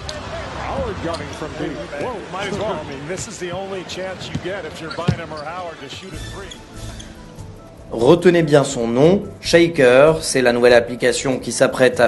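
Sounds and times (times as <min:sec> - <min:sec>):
voices: 0:00.0 - 0:12.0
basketball bouncing on court: 0:03.1 - 0:06.0
low pulsing music beat: 0:06.1 - 0:10.2.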